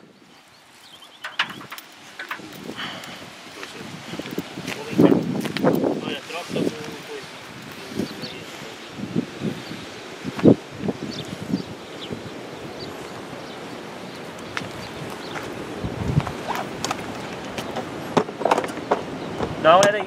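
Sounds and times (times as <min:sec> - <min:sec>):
outdoor noise: 0:00.0 - 0:20.0.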